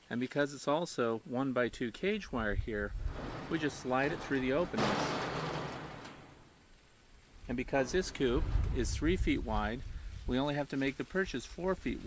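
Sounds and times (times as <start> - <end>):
wooden perch scraping cage wire: 3.0 - 6.4.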